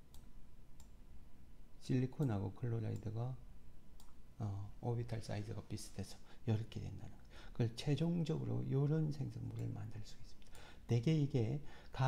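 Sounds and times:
low steady hum: 0.0 - 12.0
faint clicks: 0.1 - 1.0, 4.0 - 4.2
person speaking: 1.8 - 3.5, 4.1 - 12.0.

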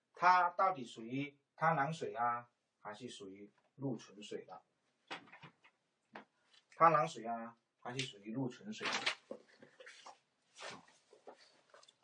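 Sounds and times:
papers rustling and knocking: 5.1 - 6.3, 8.8 - 12.0.

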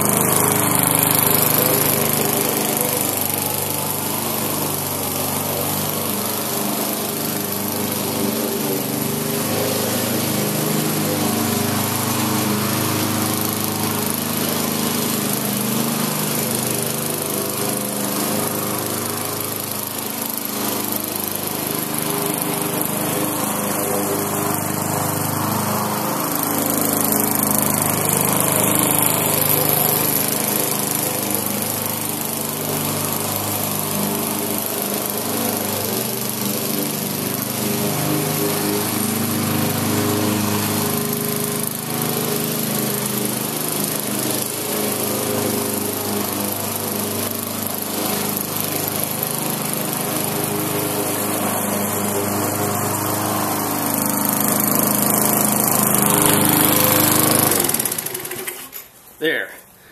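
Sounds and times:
push mower engine running: 0.0 - 59.3.

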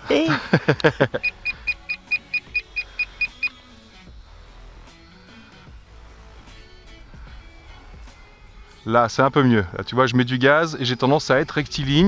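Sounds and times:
faint background music: 0.0 - 12.0
radio transmitter beeping: 1.1 - 3.6.

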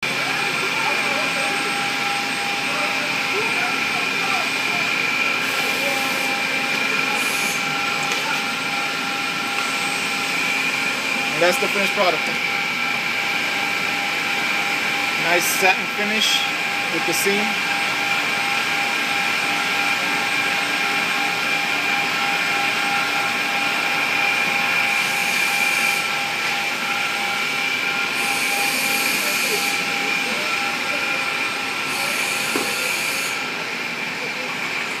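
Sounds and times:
machine humming with whining tones: 0.0 - 35.0
hiss: 28.1 - 29.8, 31.8 - 33.4.

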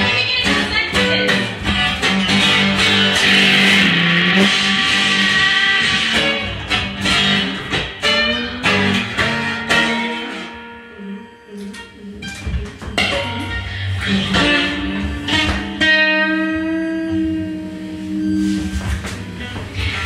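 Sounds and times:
banjo notes plucked: 0.0 - 20.0
low electronic drone: 8.6 - 20.0.

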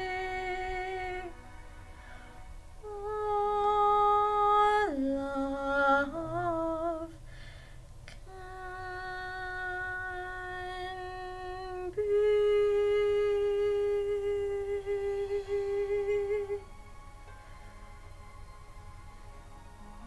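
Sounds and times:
woman singing long notes: 0.0 - 1.4, 2.8 - 7.2, 8.2 - 16.7.

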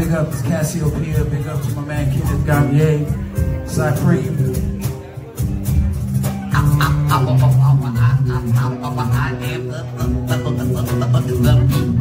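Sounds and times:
bass guitar: 0.0 - 12.0
electric guitar: 0.0 - 12.0
hand percussion: 3.4 - 12.0.

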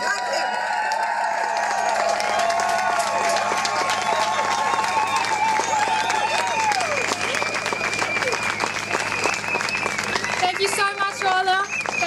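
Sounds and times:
crowd applauding: 0.0 - 12.0
crowd cheering: 0.0 - 12.0.

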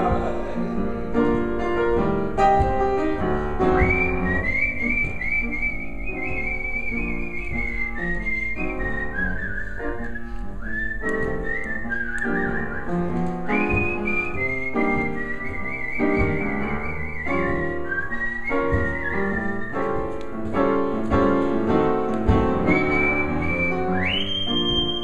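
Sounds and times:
piano accompaniment: 0.0 - 25.0
man whistling a melody: 2.6 - 20.9, 21.7 - 25.0.

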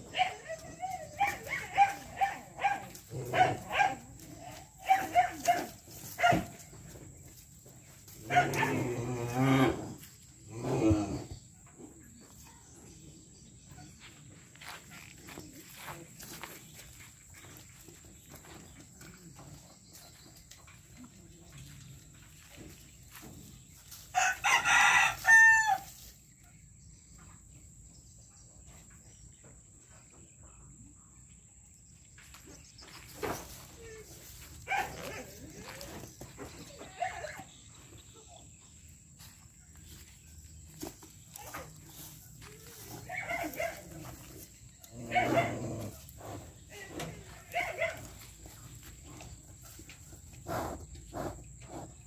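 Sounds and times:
dog barking: 1.2 - 4.1, 4.8 - 6.6, 8.3 - 8.8, 34.7 - 35.4, 43.1 - 44.0, 45.0 - 45.6, 47.5 - 48.2
rooster crowing: 24.1 - 25.9.

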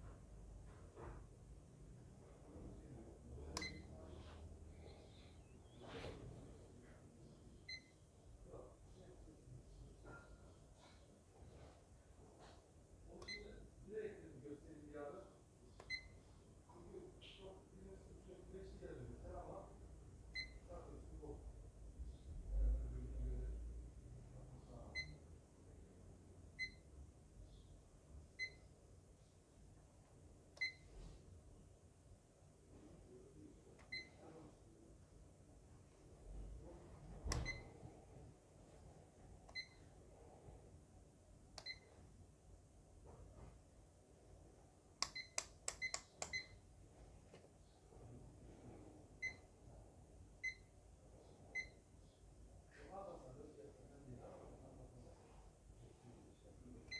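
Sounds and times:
multimeter short beeps: 3.6 - 4.0, 7.6 - 8.0, 13.2 - 13.5, 37.4 - 37.7, 39.5 - 39.9, 41.6 - 41.9, 45.1 - 46.6, 51.6 - 51.8
multimeter short high beeps: 3.6 - 4.0.

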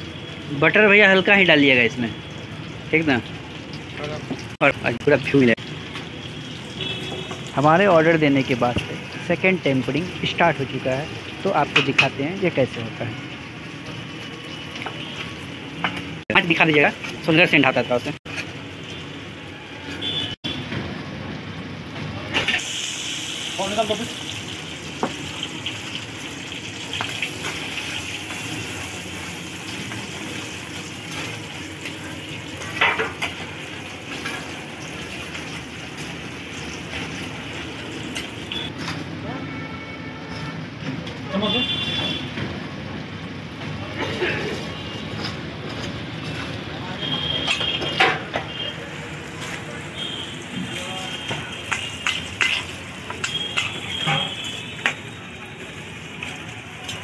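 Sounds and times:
onions sizzling in hot oil: 0.0 - 38.8, 44.4 - 57.0
metal spatula scraping pan: 52.0 - 54.4.

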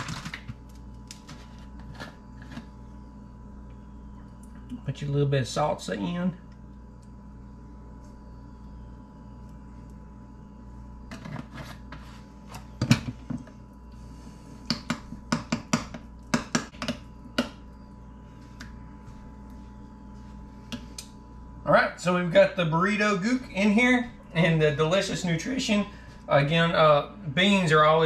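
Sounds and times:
low room hum: 0.0 - 28.0.

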